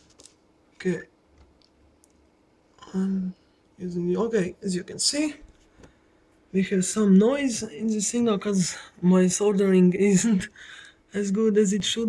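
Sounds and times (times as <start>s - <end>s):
man speaking: 0.8s - 1.1s, 2.8s - 5.4s, 6.5s - 12.0s.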